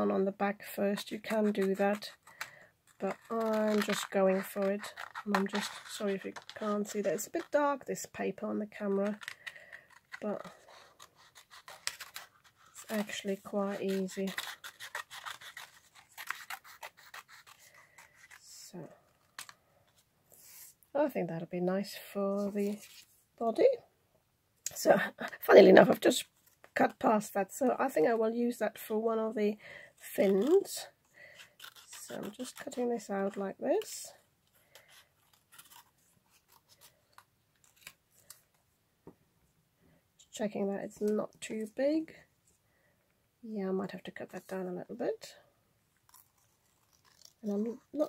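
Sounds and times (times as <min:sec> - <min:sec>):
scissors snipping paper: 0:00.8 - 0:07.6, 0:08.7 - 0:18.5, 0:30.1 - 0:34.0, 0:34.7 - 0:38.4, 0:46.1 - 0:48.0.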